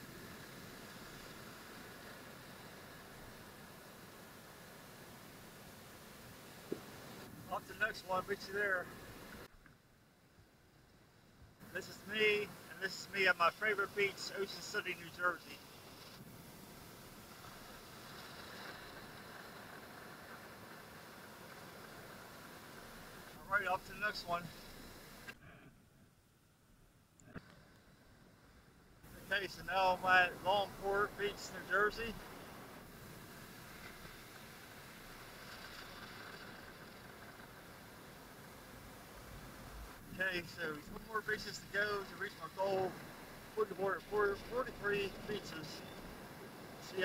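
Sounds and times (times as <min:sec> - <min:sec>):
small waves breaking on beach: 0:00.0 - 0:09.4, 0:11.6 - 0:25.3, 0:29.1 - 0:47.0
waves breaking on sand: 0:29.1 - 0:47.0.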